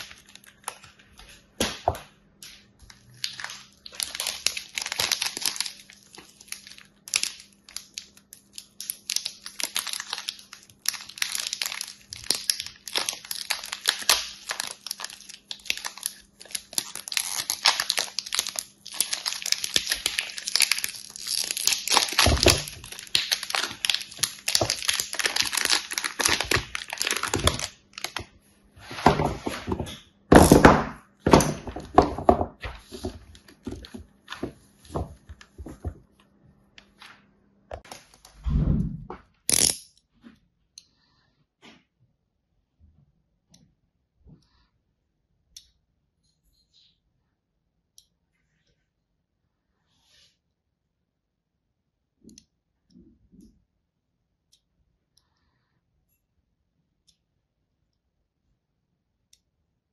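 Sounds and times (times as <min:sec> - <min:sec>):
plastic wrapper crinkling and tearing: 0:00.0 - 0:01.7, 0:02.8 - 0:29.6, 0:32.8 - 0:36.0, 0:37.8 - 0:38.4.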